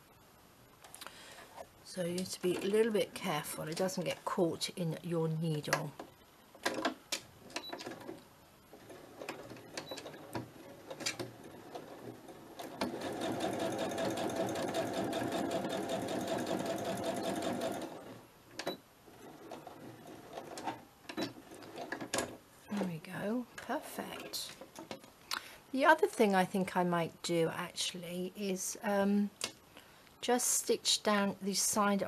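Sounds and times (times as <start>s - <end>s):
sewing machine stitching: 7.6s - 22.4s.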